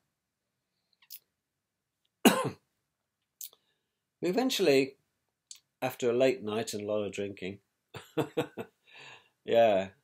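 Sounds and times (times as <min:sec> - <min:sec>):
man coughing: 0:02.2 - 0:02.6
faint breath or sniff: 0:08.8 - 0:09.4.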